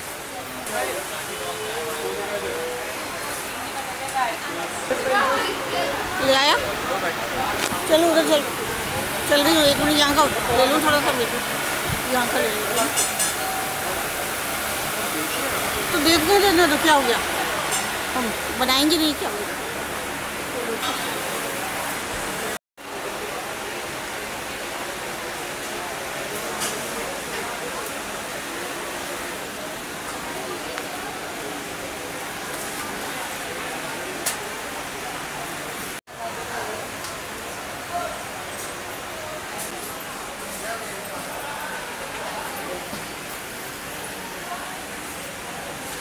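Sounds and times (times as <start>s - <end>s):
background chatter: 0.0s - 46.0s
crowd ambience hiss: 0.0s - 46.0s
market background noise: 0.0s - 46.0s.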